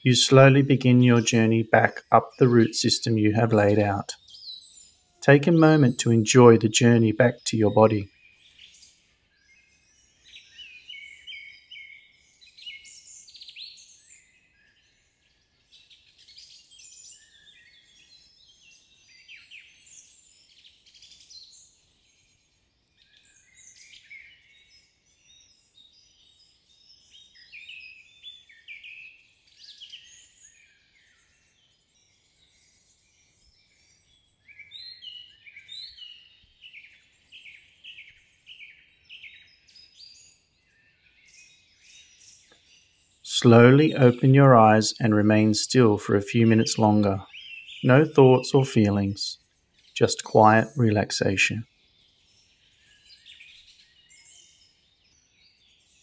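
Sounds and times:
songbirds chirping and singing: 0.0s - 56.0s.

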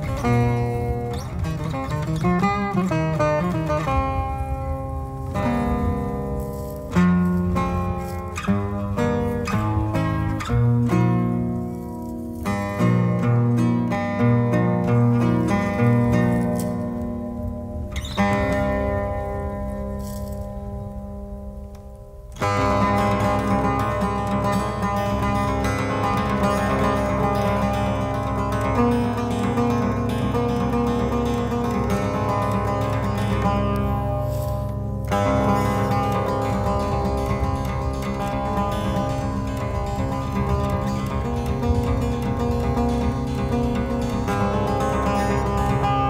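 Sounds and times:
plucked lute chord and fast picking: 0.0s - 46.0s.

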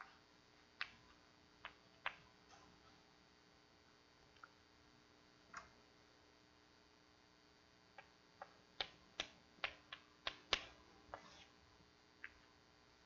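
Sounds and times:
chalk tapping on blackboard: 8.8s - 11.5s.

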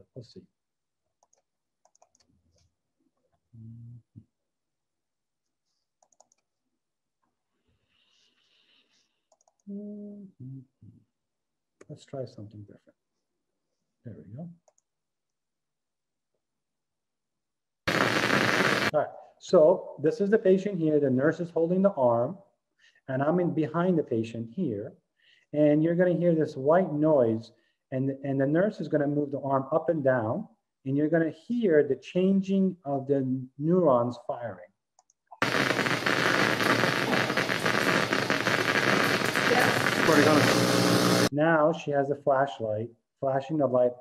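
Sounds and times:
loud crackling hiss: 17.9s - 19.0s, 35.4s - 41.3s.

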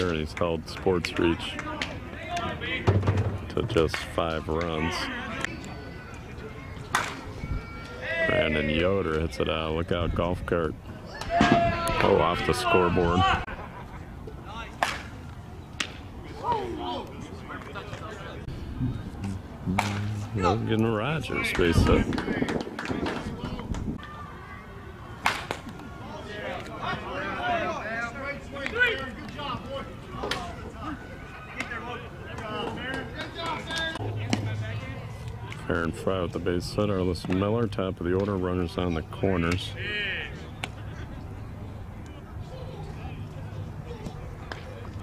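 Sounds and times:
faint distant voices calling: 0.0s - 45.0s.

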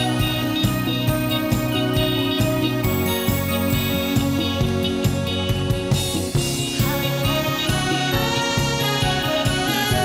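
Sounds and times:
live band playing: 0.0s - 10.0s
steady drum beat: 0.0s - 10.0s
trombones: 6.8s - 10.0s.

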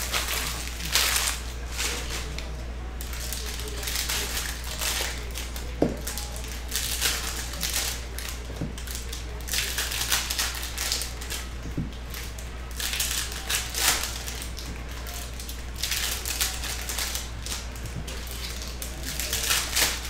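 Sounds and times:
foil packs crinkling and tearing: 0.0s - 20.0s
steady low hum: 0.0s - 20.0s.

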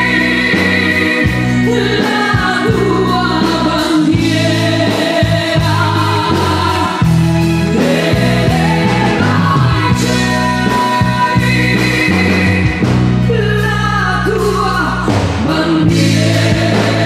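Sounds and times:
drums playing a beat: 0.0s - 17.0s
electric bass: 0.0s - 17.0s
guitar: 0.0s - 17.0s
woman singing into microphone: 0.0s - 17.0s.

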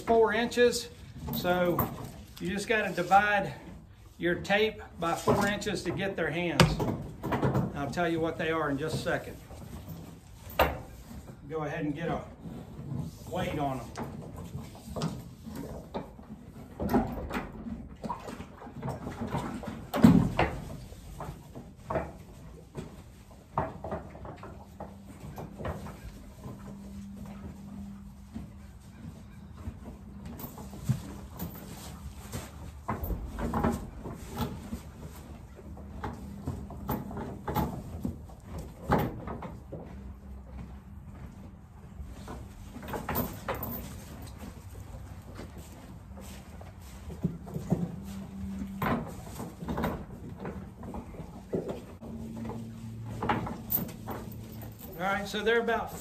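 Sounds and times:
hooves thumping wooden stall: 0.0s - 56.0s.

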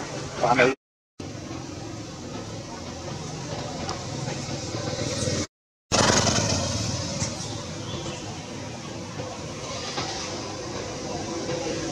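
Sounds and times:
motor vehicle engine running: 1.2s - 11.9s.

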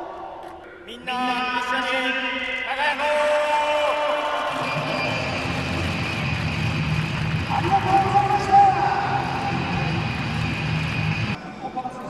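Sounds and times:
stadium crowd cheering: 3.6s - 11.4s.

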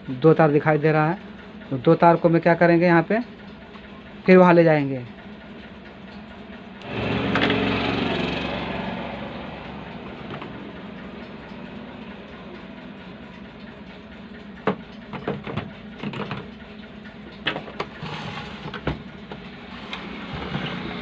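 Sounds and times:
low hum: 6.1s - 14.6s
small engine droning: 6.8s - 14.1s, 19.6s - 21.0s.

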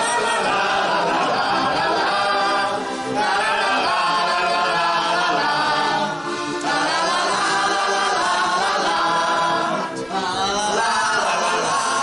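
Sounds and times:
women singing in chorus: 0.0s - 12.0s.

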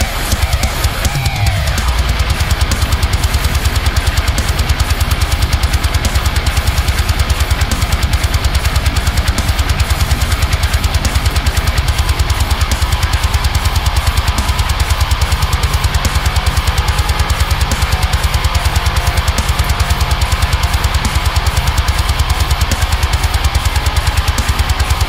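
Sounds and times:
drums in metal mix: 0.0s - 25.0s
palm-muted electric guitar chugs: 0.0s - 25.0s.

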